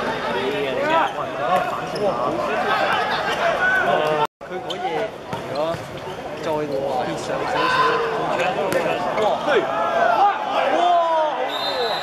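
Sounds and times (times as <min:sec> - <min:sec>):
people shouting and calling out: 0:07.4 - 0:12.0.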